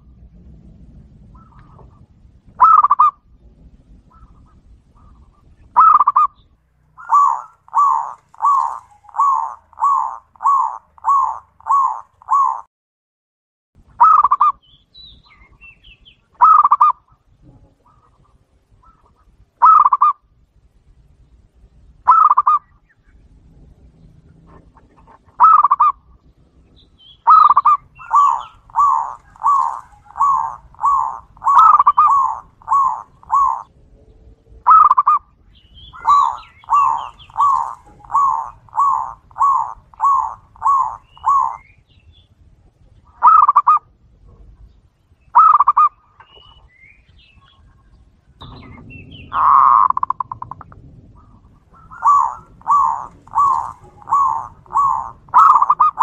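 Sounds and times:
dove cooing: 1.2 - 3.2, 3.9 - 6.4, 7.0 - 12.7, 14.0 - 14.6, 16.4 - 20.2, 22.1 - 22.7, 24.3 - 26.0, 27.1 - 33.7, 34.6 - 41.8, 43.0 - 44.7, 45.3 - 46.7, 48.4 - 56.0.

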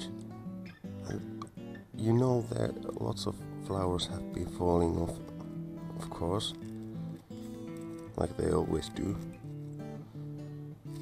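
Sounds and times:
plucked guitar notes: 0.0 - 11.0.

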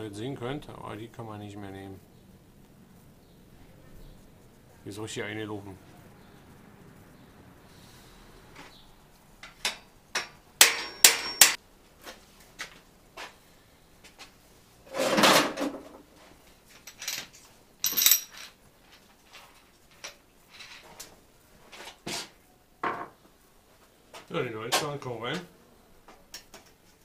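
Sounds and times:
metal tools clinking on workbench: 9.4 - 11.6, 16.7 - 20.9.

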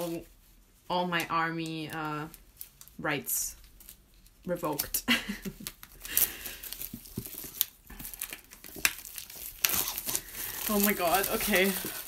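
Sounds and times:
packaging crinkling and rustling: 1.2 - 12.0
person laughing: 5.1 - 5.7.

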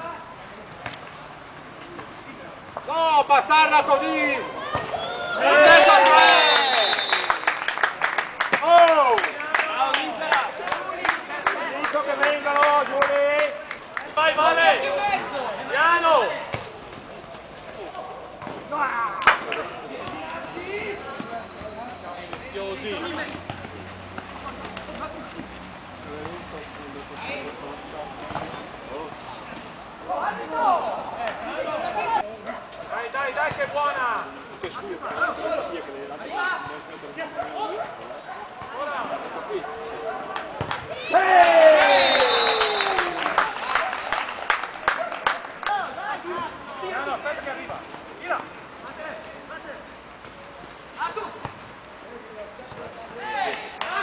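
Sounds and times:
people shouting: 3.6 - 7.3, 40.9 - 43.2.

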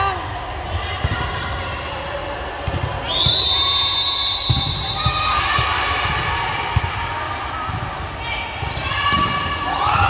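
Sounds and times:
referee's whistle blast: 3.1 - 5.2.

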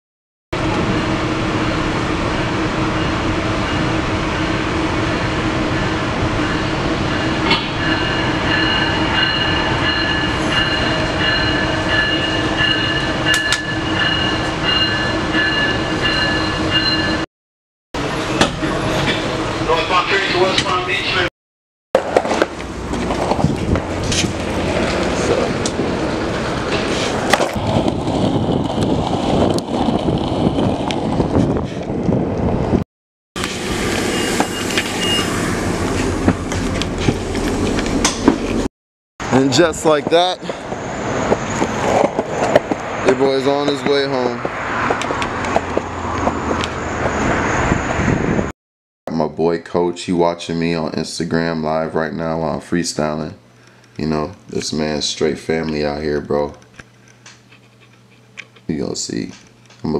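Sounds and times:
steady vehicle drone: 0.6 - 14.9, 22.0 - 32.8, 33.4 - 48.5
pulsing high whine: 0.6 - 17.2, 33.4 - 38.7
train running rumble: 0.6 - 17.2, 18.0 - 21.3, 22.0 - 32.8, 33.4 - 48.5
skateboard wheels on rough pavement: 22.0 - 32.5.

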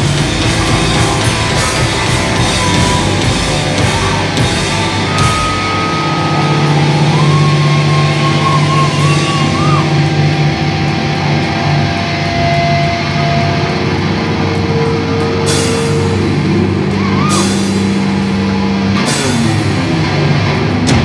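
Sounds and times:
wavering high guitar note: 0.0 - 13.9
distorted guitar and bass chord: 0.0 - 21.0.

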